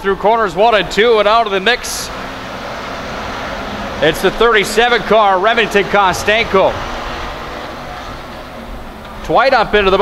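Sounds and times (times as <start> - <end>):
race car engines running: 0.0 - 10.0.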